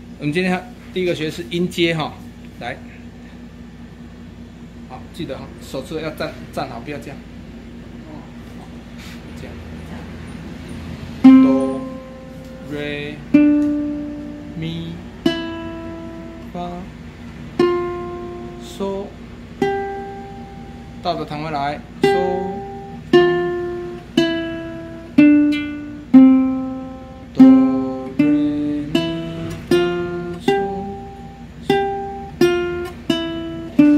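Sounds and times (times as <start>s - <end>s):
ukulele note plucked: 11.2s - 16.5s, 22.0s - 33.9s.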